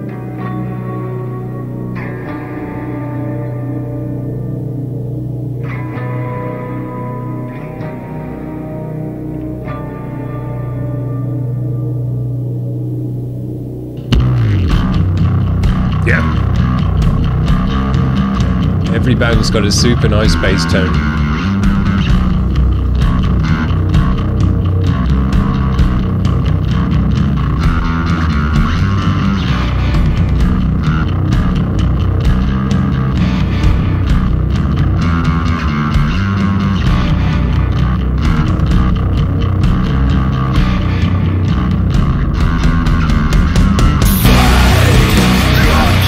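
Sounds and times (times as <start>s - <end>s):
electric guitars: 0.0s - 46.0s
heavy bass guitar: 0.0s - 46.0s.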